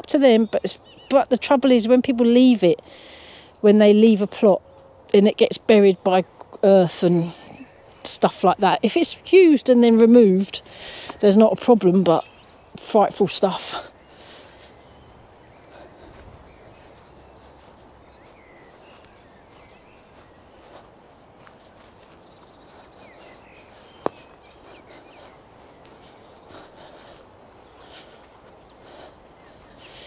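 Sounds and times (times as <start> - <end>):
faint birdsong: 0.0 - 30.0
footsteps on gravel path: 5.6 - 30.0.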